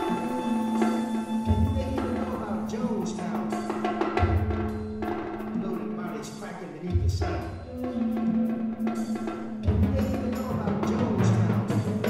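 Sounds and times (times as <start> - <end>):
held low tone: 0.0 - 3.7.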